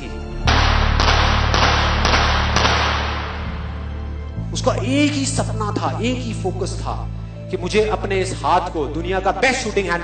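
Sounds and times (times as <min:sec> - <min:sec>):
background music: 0:00.0 - 0:10.0
sharp knocks: 0:00.5 - 0:03.7.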